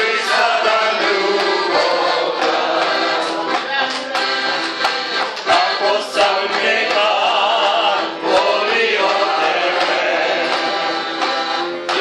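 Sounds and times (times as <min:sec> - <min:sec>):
accordion: 0:00.0 - 0:12.0
group singing a folk song: 0:00.0 - 0:12.0.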